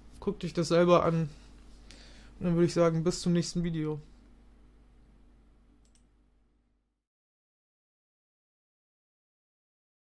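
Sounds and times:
faint quick clicks: 5.8s - 6.1s.

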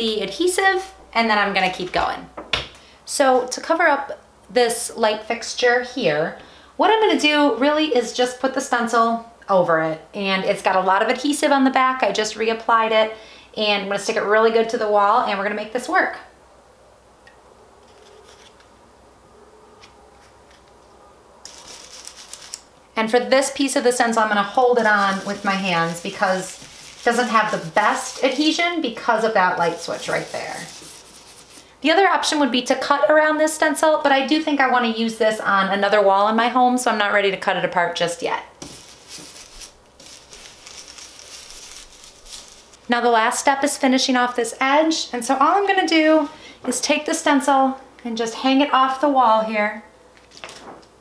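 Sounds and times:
stencil brush scrubbing on wall: 23.6s - 31.8s, 38.6s - 43.0s.

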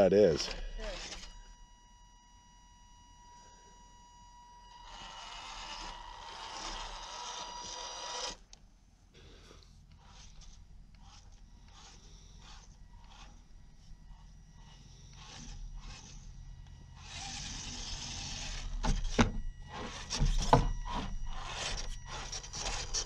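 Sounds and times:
toy car scraping on wood: 4.7s - 8.4s, 9.9s - 13.4s, 14.1s - 16.4s, 17.0s - 23.0s.

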